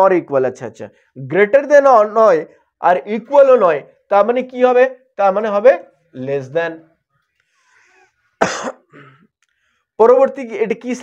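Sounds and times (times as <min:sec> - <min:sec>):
man coughing: 0:08.4 - 0:09.3.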